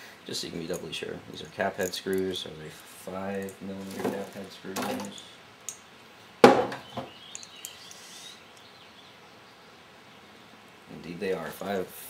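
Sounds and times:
faint background noise: 0:00.0 - 0:12.0
faint high chirps: 0:06.9 - 0:09.7.

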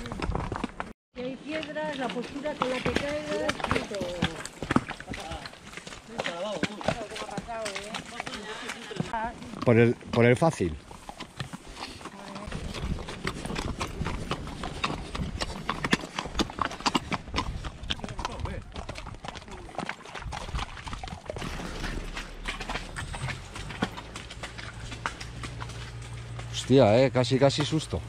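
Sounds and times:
hooves clip-clopping on gravel: 0:00.0 - 0:28.0.

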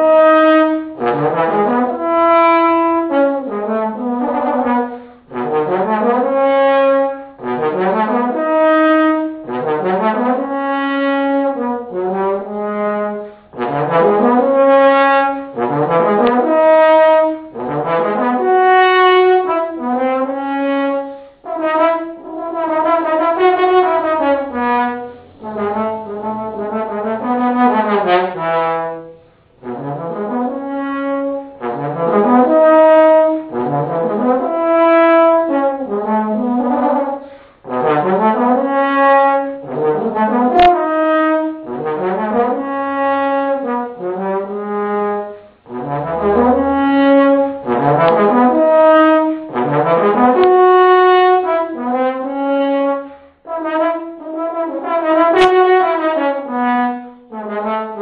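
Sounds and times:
solo trombone melody: 0:00.0 - 0:58.0.

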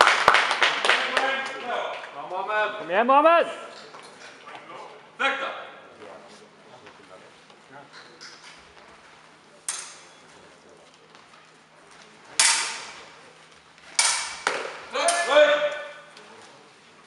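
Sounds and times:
sabre blades clashing: 0:12.4 - 0:13.0, 0:13.9 - 0:15.8.

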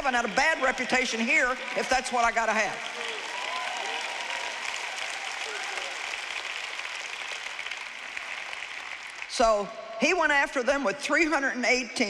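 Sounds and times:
audience applauding: 0:00.0 - 0:09.4.

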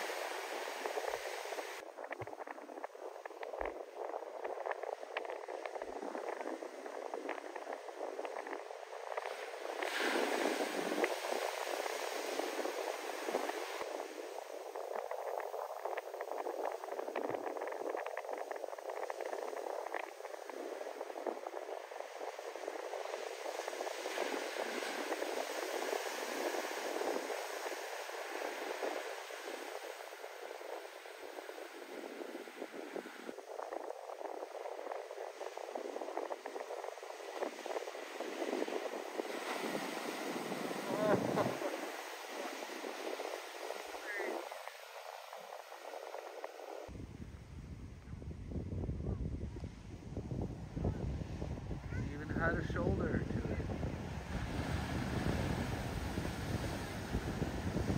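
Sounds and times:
waves breaking on beach: 0:00.0 - 0:47.0, 0:50.5 - 0:57.9.

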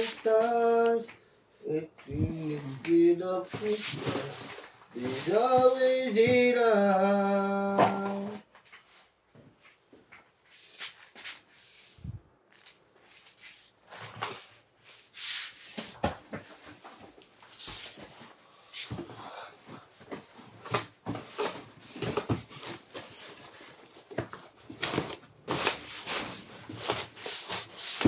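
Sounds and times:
plastic and bubble wrap crinkling: 0:03.0 - 0:06.7, 0:10.6 - 0:15.1, 0:19.9 - 0:28.0.

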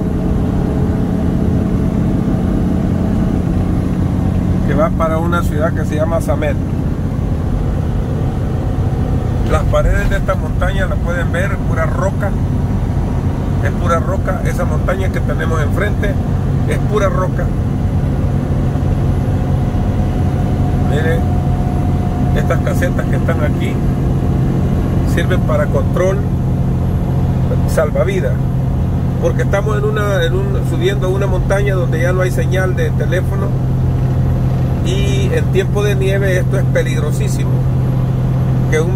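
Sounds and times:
road and tyre noise: 0:00.0 - 0:38.9
truck engine droning: 0:00.0 - 0:38.9.

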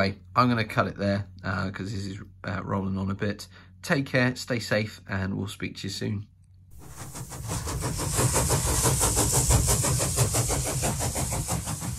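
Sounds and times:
engine running: 0:06.8 - 0:11.9.

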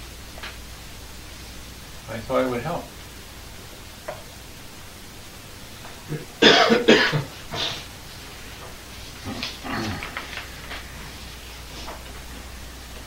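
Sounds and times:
steady low hiss: 0:00.0 - 0:13.0
person coughing: 0:06.1 - 0:07.8.

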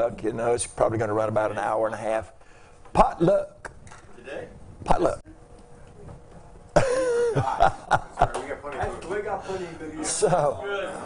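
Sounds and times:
man laughing: 0:06.8 - 0:08.5.

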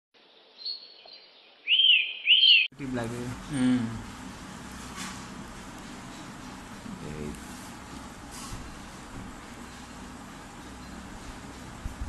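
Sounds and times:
loud rising and falling chirp: 0:01.6 - 0:02.7.

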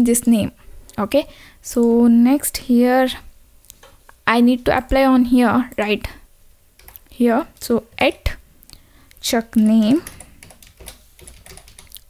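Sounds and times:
typing on computer keyboard: 0:06.8 - 0:07.0, 0:10.0 - 0:12.0.

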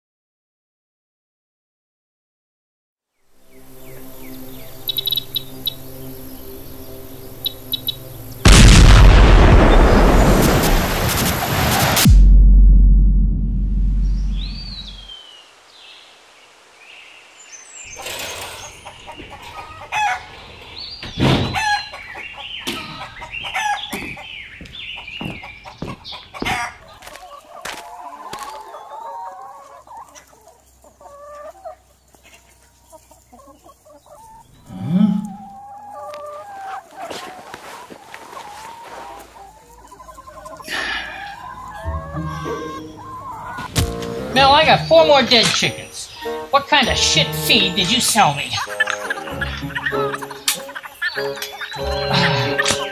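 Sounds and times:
chickens clucking: 0:03.8 - 0:08.4, 0:17.9 - 0:52.9
low rumble: 0:08.5 - 0:15.1.

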